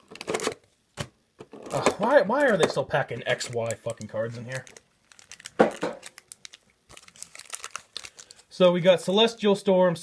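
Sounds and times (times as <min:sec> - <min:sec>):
foil wrappers crinkling: 0:01.7 - 0:09.2.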